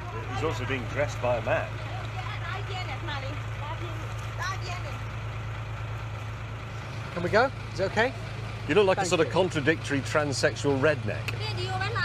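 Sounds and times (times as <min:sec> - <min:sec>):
faint outdoor background noise: 0:00.0 - 0:12.0
vehicle engine idling: 0:00.0 - 0:12.0.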